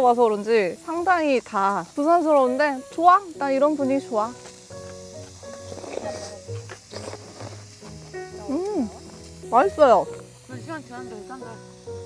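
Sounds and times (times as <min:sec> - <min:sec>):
soft background music: 0:00.0 - 0:12.0
faint eating sounds: 0:04.4 - 0:09.4
woman humming mmm: 0:08.4 - 0:09.0.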